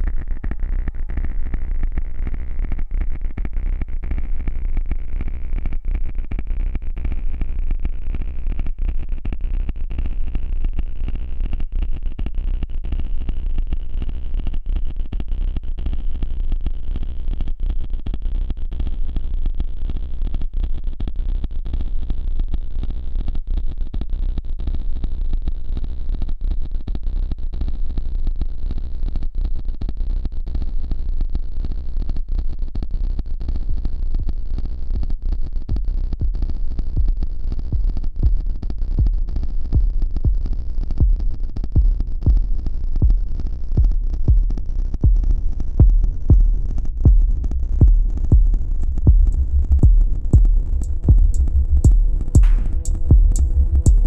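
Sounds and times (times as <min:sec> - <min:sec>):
deep low hum: 0:35.0 - 0:54.0
ambient electronic music: 0:45.1 - 0:54.0
bright filtered tone rising: 0:46.8 - 0:54.0.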